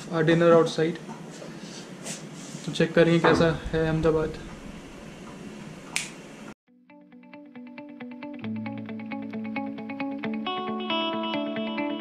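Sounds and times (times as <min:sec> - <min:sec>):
plucked guitar music: 0:06.9 - 0:12.0.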